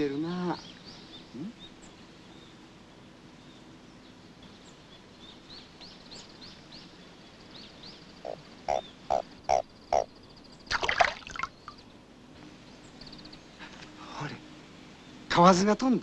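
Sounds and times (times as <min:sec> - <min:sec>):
birds chirping: 0:00.0 - 0:16.0
frog croaks: 0:08.2 - 0:11.8.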